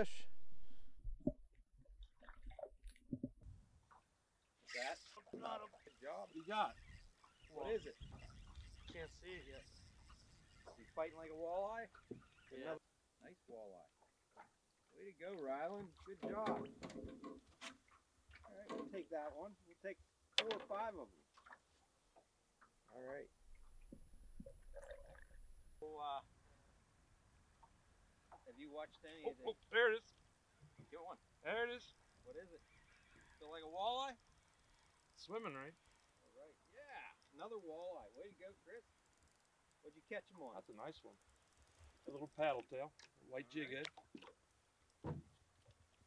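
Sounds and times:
man speaking: 0.0 - 0.3, 25.8 - 26.2, 28.5 - 30.0
soft gurgles and clicks: 0.0 - 26.3, 27.4 - 46.0.

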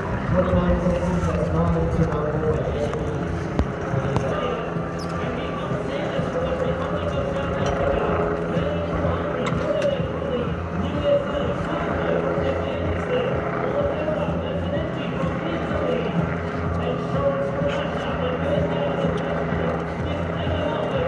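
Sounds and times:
crowd noise: 0.0 - 21.0
loudspeaker announcer voice: 0.0 - 21.0
steady low rumble: 0.0 - 21.0.

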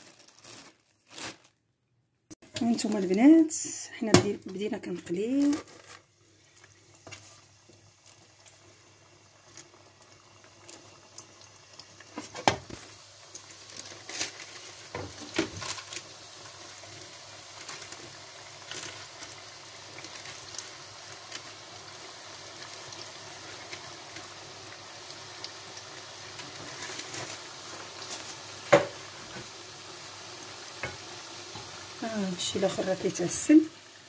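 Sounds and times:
dough deep-frying in hot oil: 2.4 - 34.0.

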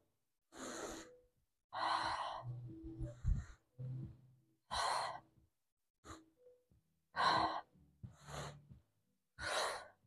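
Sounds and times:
woman breathing hard: 0.5 - 3.7, 7.1 - 8.8, 9.4 - 10.0.

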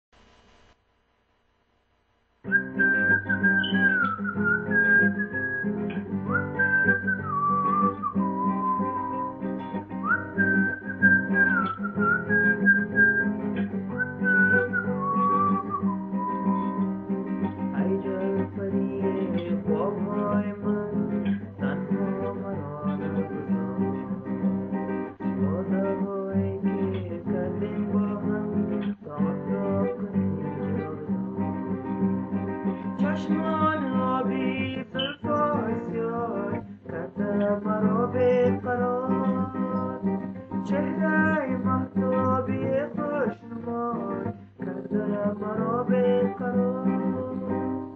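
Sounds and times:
whistled melody: 2.5 - 24.6, 26.7 - 44.2
fingerpicked classical guitar: 2.5 - 47.9.

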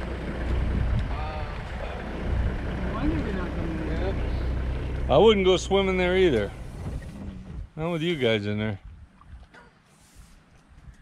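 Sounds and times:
vehicle engine idling: 0.0 - 8.2.

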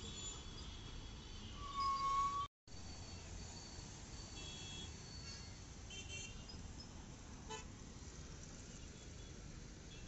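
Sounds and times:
traffic rumble: 2.8 - 10.0.

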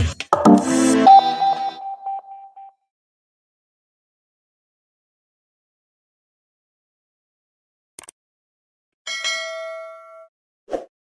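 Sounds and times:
bell ringing: 9.1 - 10.3.

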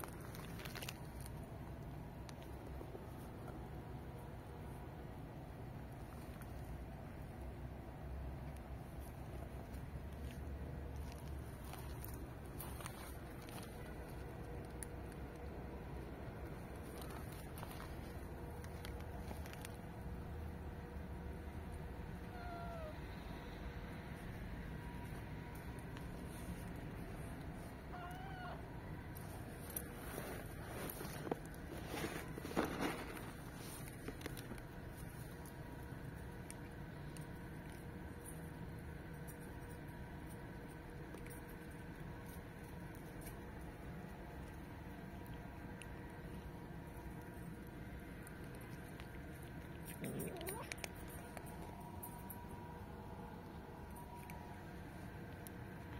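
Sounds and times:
cat crunching dry food: 0.0 - 4.8, 5.6 - 55.9
cat meowing: 22.2 - 23.0, 27.9 - 28.7.

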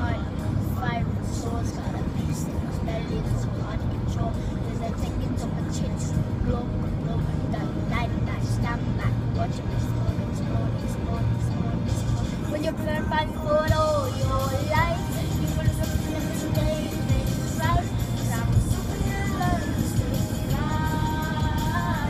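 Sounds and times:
boy singing along: 0.0 - 22.0
car cabin road noise: 0.0 - 22.0
pop song on car stereo: 0.0 - 22.0.

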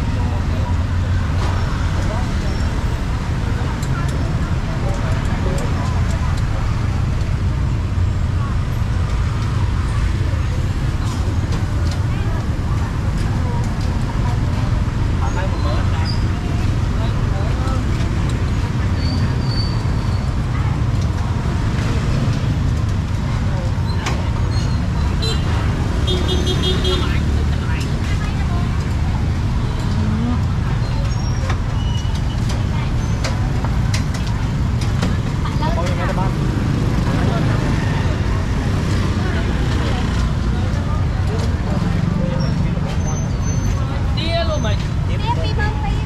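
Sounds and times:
traffic engines rumbling: 0.0 - 46.0.

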